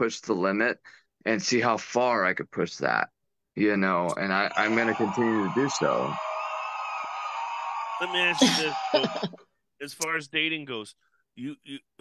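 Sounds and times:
man talking: 8.0 - 12.0.

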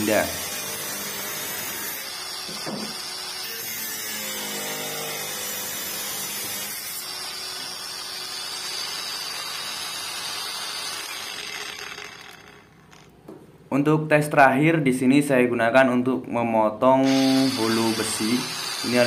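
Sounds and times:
angle grinder cutting steel tube: 0.0 - 13.2, 17.0 - 19.0.

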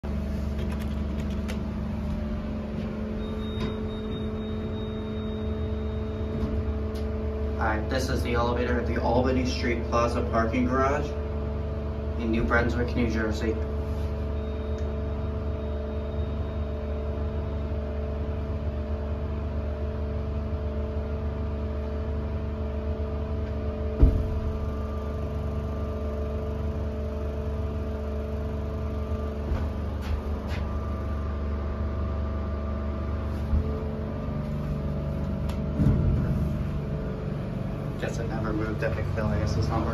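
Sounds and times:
elevator humming: 0.0 - 39.9
soft thump: 24.0 - 24.5, 35.7 - 36.6.

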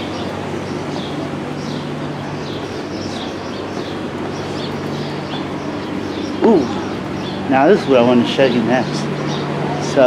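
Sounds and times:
small bird chirping: 0.0 - 10.0
steady low hum: 0.0 - 10.0
street noise: 0.0 - 10.0.

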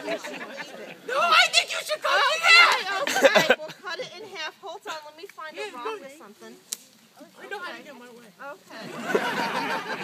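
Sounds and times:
sharp snap: 6.7 - 7.0.

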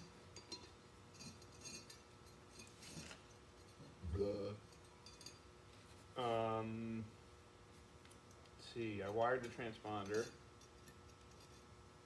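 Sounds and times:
metallic clinks and rattles: 4.7 - 5.5.

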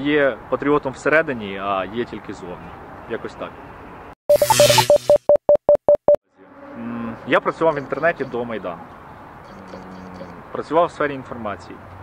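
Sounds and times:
short electronic beeps: 4.3 - 6.2.

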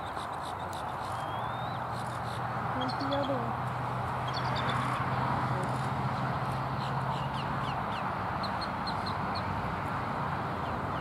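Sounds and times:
high falling bird chirps: 0.0 - 1.9.

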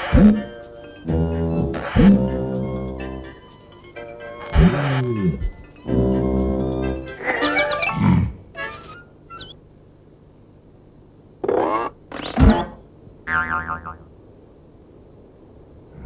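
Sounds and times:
sliding cartoon sound effects: 0.0 - 3.4, 4.2 - 9.6
low musical chord: 0.9 - 7.2.

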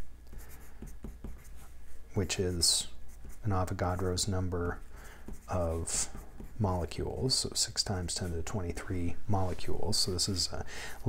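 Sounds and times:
pencil writing on paper: 0.3 - 1.8, 2.6 - 8.5.

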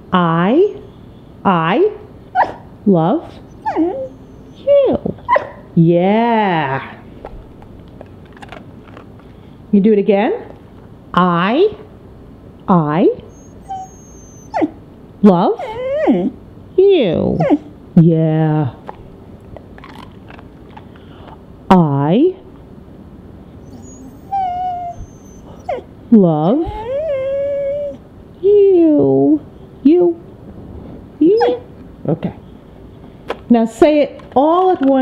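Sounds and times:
dog whimpering: 2.3 - 2.6, 3.2 - 5.6, 13.2 - 14.8, 15.5 - 16.4, 17.1 - 17.7, 23.6 - 28.0, 31.3 - 31.7
dog yowling: 2.3 - 4.7, 5.3 - 5.7, 13.2 - 14.8, 15.6 - 16.4, 17.3 - 17.7, 23.6 - 25.9, 26.6 - 28.0, 31.4 - 31.7
dog whining: 2.3 - 5.7, 13.2 - 14.8, 15.4 - 16.4, 17.1 - 17.8, 23.6 - 28.1, 31.3 - 31.8.

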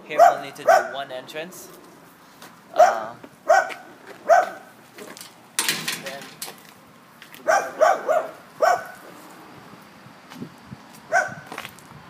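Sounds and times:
dog barking: 0.1 - 1.0, 2.8 - 4.7, 7.4 - 9.0, 11.1 - 11.4.

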